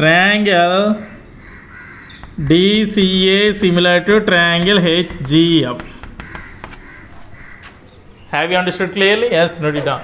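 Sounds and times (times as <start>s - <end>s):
faint crows cawing: 1.0s - 8.3s
chalk tapping on chalkboard: 2.1s - 7.1s.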